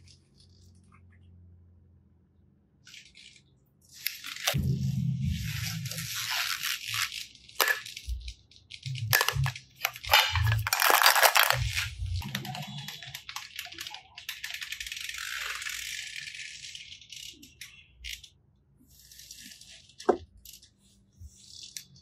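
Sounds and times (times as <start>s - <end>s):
plastic toys rattling and clacking: 2.8s - 4.6s, 5.4s - 18.3s, 18.9s - 22.0s.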